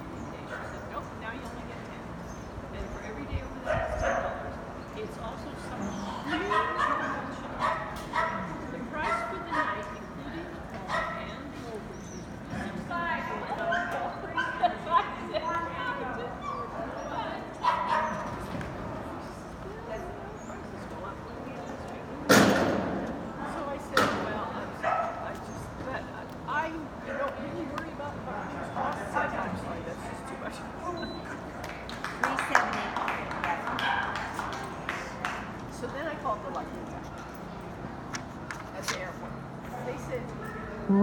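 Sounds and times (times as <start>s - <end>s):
dog barking: 3.7s - 4.4s, 6.5s - 9.9s, 10.9s - 11.4s, 17.6s - 18.3s, 24.8s - 25.2s, 33.8s - 34.2s.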